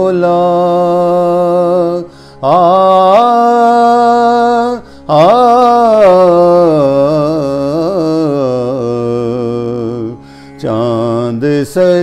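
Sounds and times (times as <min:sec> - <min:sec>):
man singing in chanting style: 0:00.0 - 0:12.0.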